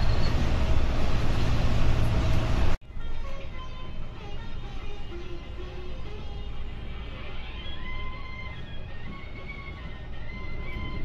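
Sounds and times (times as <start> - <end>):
coach engine and road noise: 0.0 - 11.0
background music: 2.8 - 11.0.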